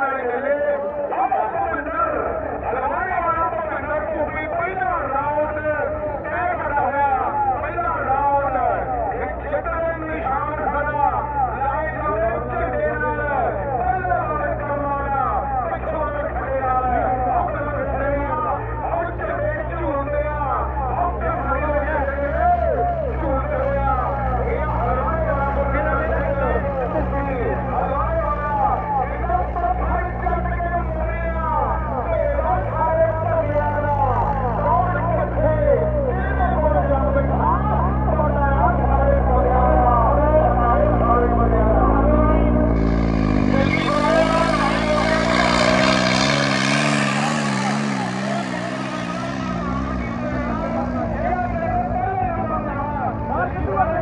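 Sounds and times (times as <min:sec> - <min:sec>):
low engine hum: 0:02.0 - 0:54.0
person talking: 0:43.4 - 0:54.0.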